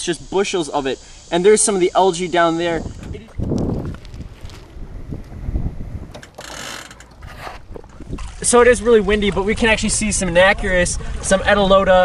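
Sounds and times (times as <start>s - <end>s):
wind buffeting microphone: 2.6s - 12.0s
small knocks: 6.1s - 8.1s.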